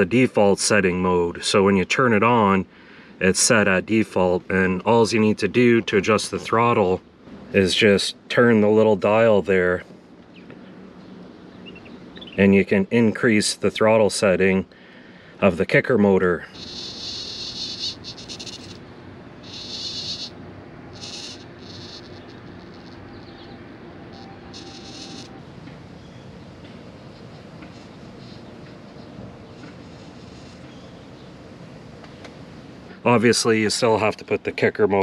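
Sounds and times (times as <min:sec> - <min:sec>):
low steady hum: 0:02.7 - 0:34.7
servo whining: 0:16.5 - 0:31.3.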